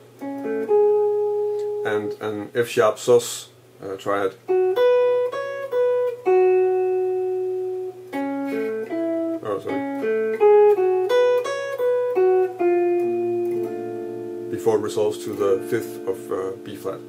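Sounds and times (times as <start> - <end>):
clean electric jazz guitar: 0.0 - 3.0, 3.8 - 17.0.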